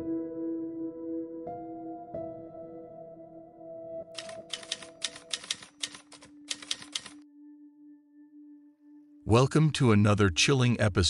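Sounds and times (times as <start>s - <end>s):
typewriter keys clacking: 4.2s - 7.2s
ambient music drone: 7.2s - 9.3s.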